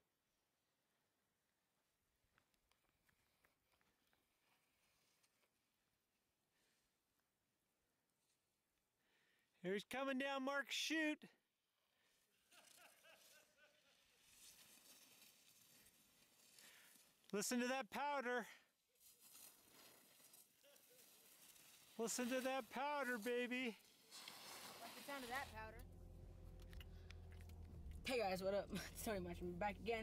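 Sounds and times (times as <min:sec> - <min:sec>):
skis sliding through snow: 0:12.7 - 0:17.2, 0:19.0 - 0:25.7
car cabin low drone: 0:25.5 - 0:30.0.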